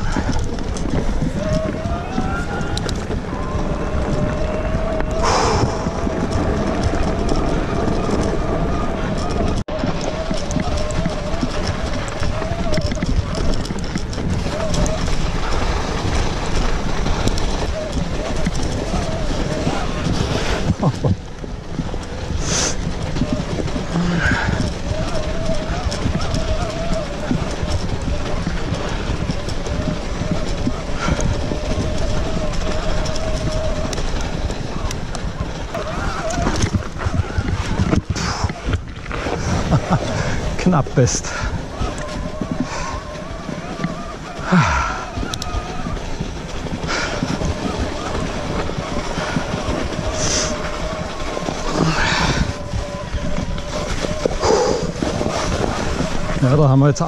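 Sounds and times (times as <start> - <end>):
tyres rumbling on trail: 0.0 - 57.0
wind on microphone: 0.0 - 57.0.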